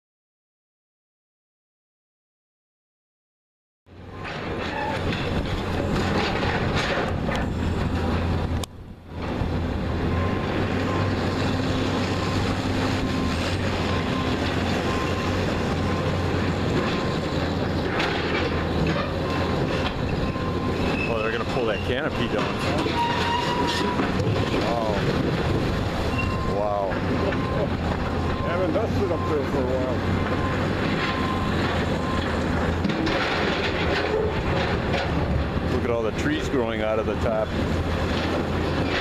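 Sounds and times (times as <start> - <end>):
excavator diesel engine under load: 3.9 - 39.0
metal scraping and clanking: 4.1 - 8.6, 9.2 - 39.0
steel crunching: 4.1 - 39.0.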